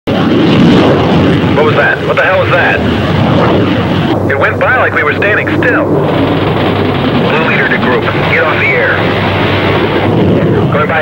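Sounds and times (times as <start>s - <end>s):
jet engines roaring: 0.1s - 11.0s
man talking: 1.6s - 2.8s, 4.3s - 5.9s, 7.2s - 9.1s, 10.6s - 11.0s.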